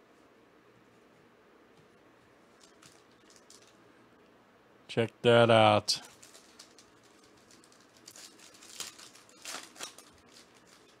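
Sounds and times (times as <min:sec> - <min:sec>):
foil wrapper crinkling and tearing: 0:06.0 - 0:11.0.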